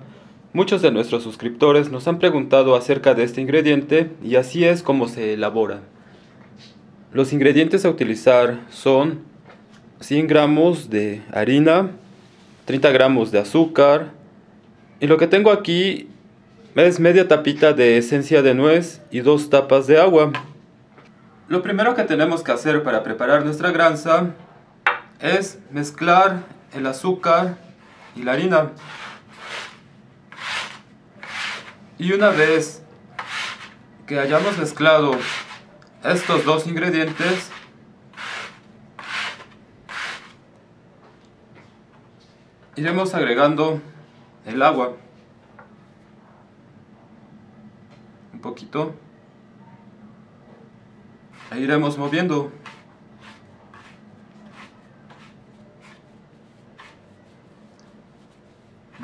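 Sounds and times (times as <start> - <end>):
fingers rubbing flour mix: 27.8 - 40.4, 51.4 - 59.0.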